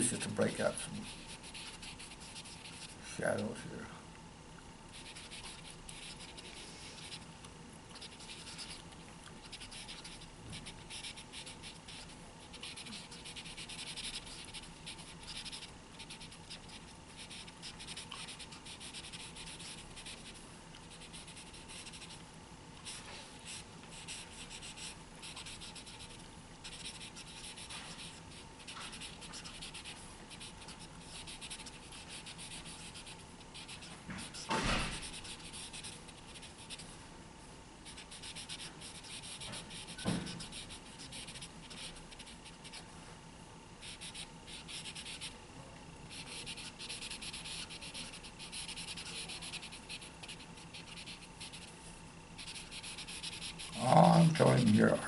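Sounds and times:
marker scratching on paper: 0.4 - 3.0, 4.9 - 7.2, 7.9 - 8.8, 9.4 - 22.2, 22.8 - 36.9, 37.8 - 42.8, 43.8 - 45.3, 46.1 - 51.8, 52.4 - 55.0
thump: 34.1 - 35.0, 40.0 - 40.3.

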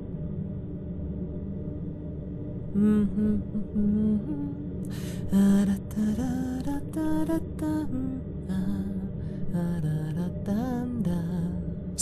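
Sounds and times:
man humming a slow tune: 2.7 - 4.7.

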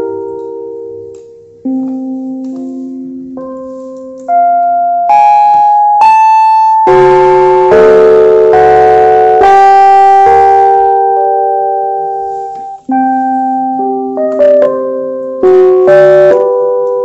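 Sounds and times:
electronic keyboard sustained notes: 0.0 - 17.0.

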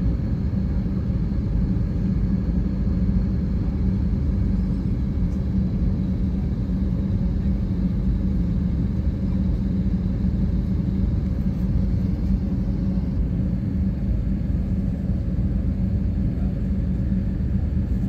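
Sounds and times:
aircraft cabin rumble: 0.0 - 18.0
jet engines humming: 0.0 - 18.0.

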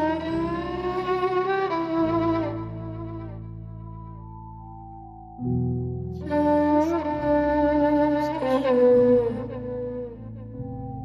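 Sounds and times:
low sustained accompaniment: 0.0 - 11.0
violin playing slow melody: 0.0 - 11.0.

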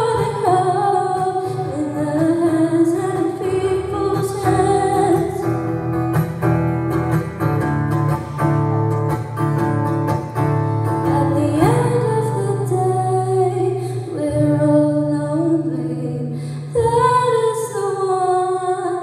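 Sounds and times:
acoustic guitar strumming: 0.0 - 17.8.

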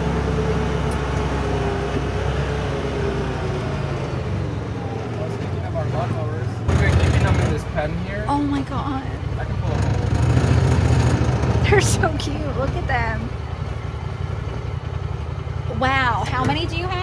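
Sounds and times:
vehicle engine rumbling: 0.0 - 17.0.

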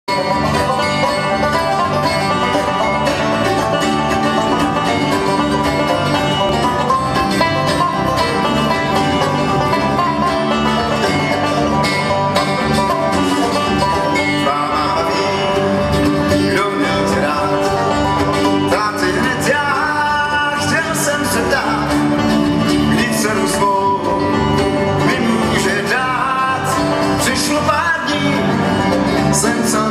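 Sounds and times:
picked banjo: 0.1 - 29.9
strummed acoustic guitars: 0.1 - 29.9
person singing: 14.0 - 29.9.

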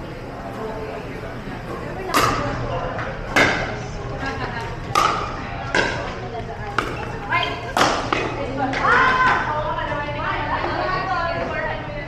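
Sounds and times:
paddles striking pickleball: 4.9 - 6.1.

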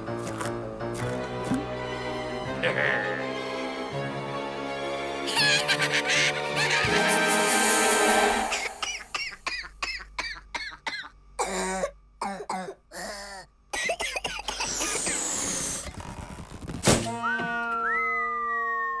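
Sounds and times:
cartoon laughter in short bursts: 5.3 - 7.2
falling whistle-like glides: 17.2 - 19.0.

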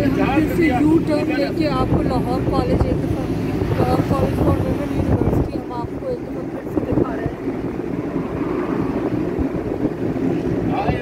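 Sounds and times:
traffic noise: 0.0 - 11.0
vehicle driving rumble: 0.0 - 11.0.

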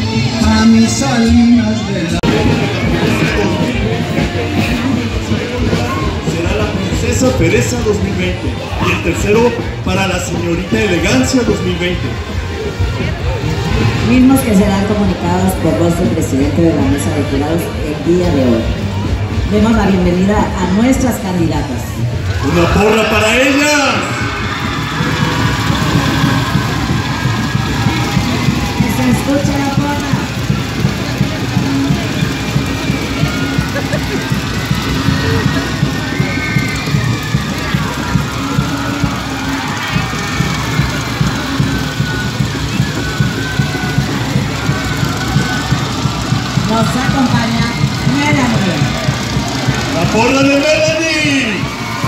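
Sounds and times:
announcer over loudspeaker: 0.0 - 12.4, 13.1 - 26.9, 28.0 - 36.3, 37.1 - 52.0
music with low beat: 24.0 - 52.0.

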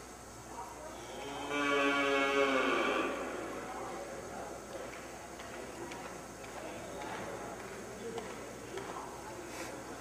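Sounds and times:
cow mooing: 1.2 - 3.2.

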